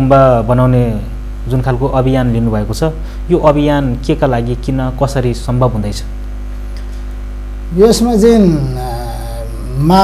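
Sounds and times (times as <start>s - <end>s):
electrical mains hum: 0.0s - 10.0s
man's drawn-out wavering voice: 7.8s - 10.0s.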